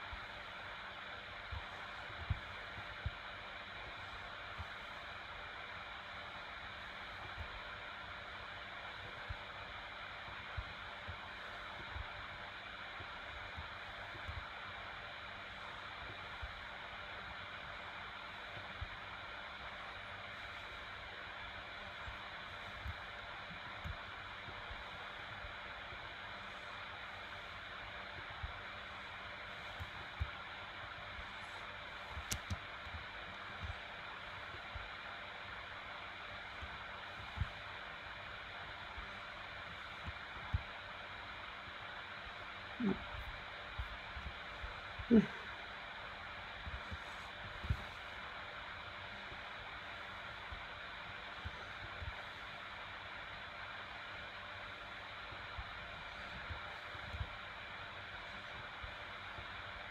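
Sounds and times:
recording noise hiss: 0:00.0 - 0:59.9.

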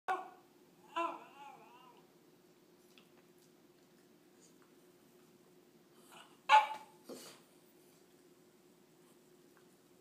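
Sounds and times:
small dog barking: 0:06.5 - 0:06.9.

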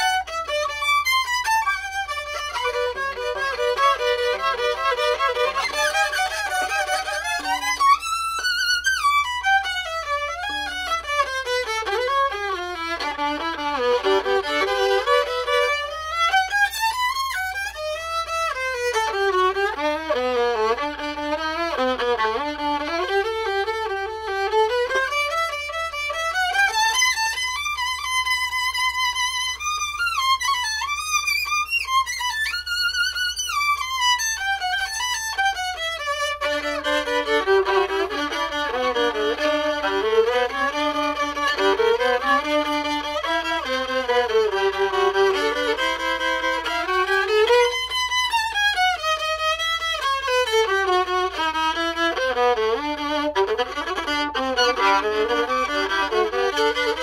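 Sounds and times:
solo violin melody: 0:00.0 - 0:57.0.

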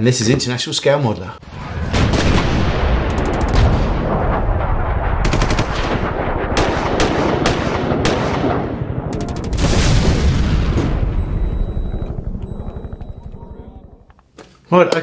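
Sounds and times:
sharp cracks: 0:01.9 - 0:11.2
rattles of sharp hits: 0:03.0 - 0:04.1, 0:09.1 - 0:10.0.

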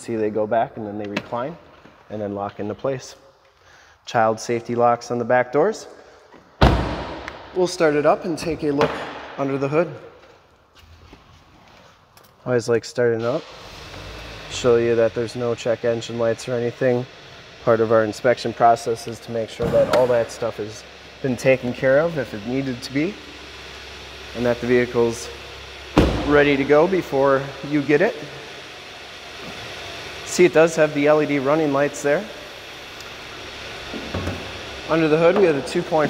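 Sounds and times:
car engine idling: 0:13.4 - 0:36.0.

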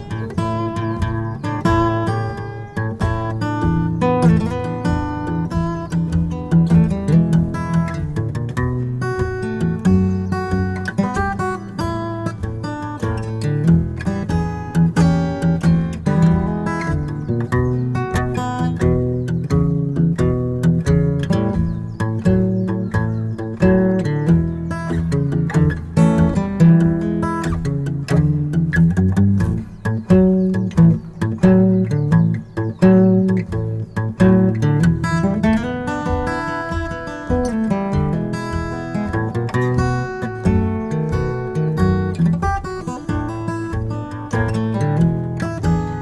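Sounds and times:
acoustic guitar blues: 0:00.0 - 0:46.0.

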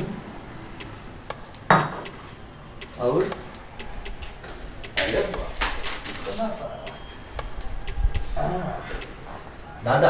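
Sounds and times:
coins clinking and jingling: 0:01.5 - 0:02.6, 0:03.5 - 0:06.6.

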